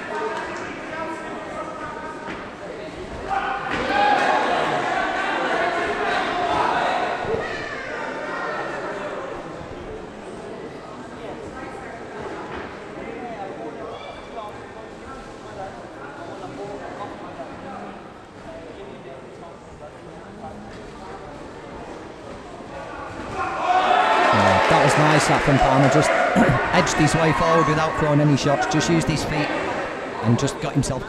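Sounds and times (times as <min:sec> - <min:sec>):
murmuring crowd: 0:00.0 - 0:31.0
loud close voices commentary: 0:24.3 - 0:31.0.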